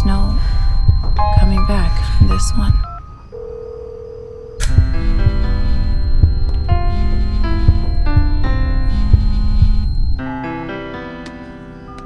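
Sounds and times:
sustained keyboard notes: 0:00.0 - 0:03.3, 0:04.6 - 0:12.0
steady electronic tone: 0:00.0 - 0:10.8.

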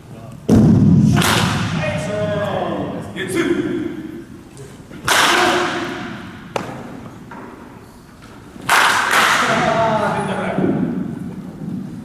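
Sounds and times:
loud knock with long echo: 0:00.5 - 0:02.1
bat cracking against ball: 0:01.1 - 0:01.8, 0:05.0 - 0:07.6, 0:08.6 - 0:09.6.

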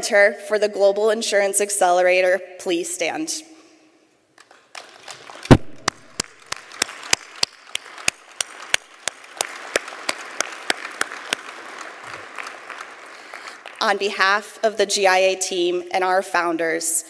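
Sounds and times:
close sharp hand claps: 0:04.4 - 0:13.8
audience applauding: 0:04.5 - 0:13.8.

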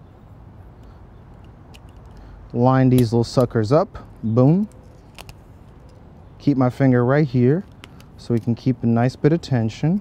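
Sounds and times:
low steady background noise: 0:00.0 - 0:10.0.

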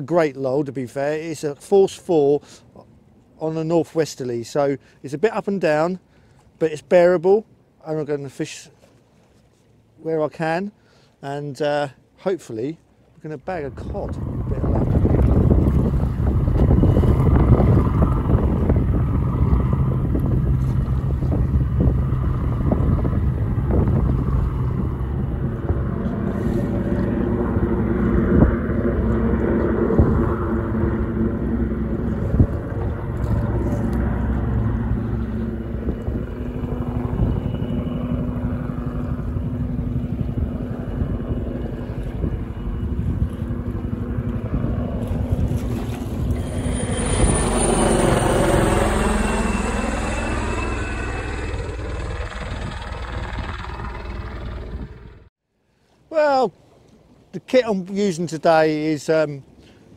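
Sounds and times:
wind noise on microphone: 0:13.6 - 0:55.2
helicopter rotor and engine: 0:13.7 - 0:55.3.

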